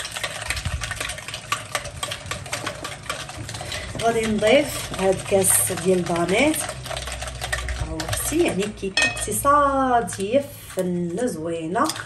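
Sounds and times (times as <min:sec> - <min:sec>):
whisk beating batter in glass bowl: 0:00.0 - 0:12.0.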